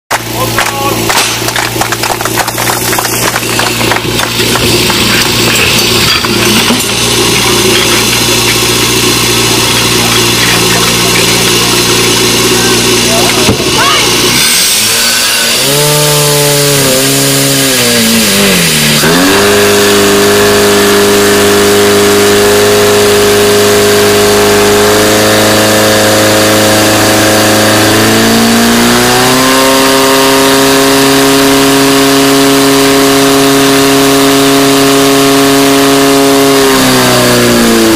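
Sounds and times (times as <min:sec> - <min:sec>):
pump engine running at high revs: 0:00.1 - 0:37.9.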